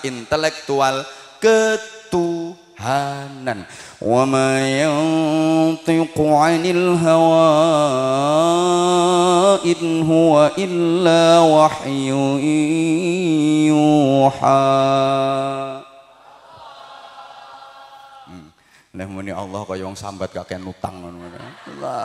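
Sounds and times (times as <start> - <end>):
man chanting religious melody: 0.0 - 15.9.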